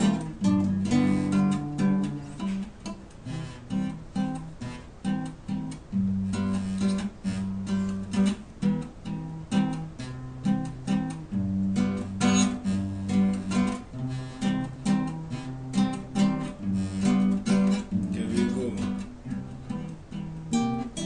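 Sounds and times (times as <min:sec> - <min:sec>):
acoustic guitars playing: 0:00.0 - 0:21.0.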